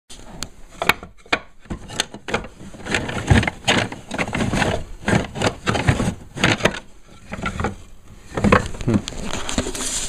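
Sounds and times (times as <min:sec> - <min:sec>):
wood offcuts knocking and scraping: 0:00.1 - 0:10.0.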